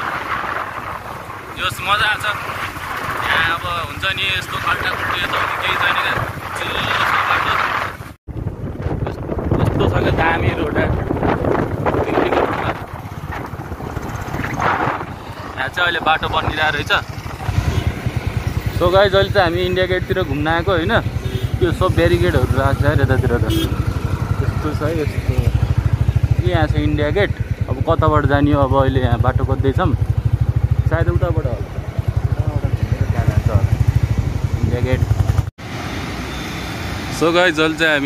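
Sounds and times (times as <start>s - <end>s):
wind noise: 0.0s - 27.8s
road noise: 0.0s - 38.0s
motorcycle engine running: 8.3s - 35.5s.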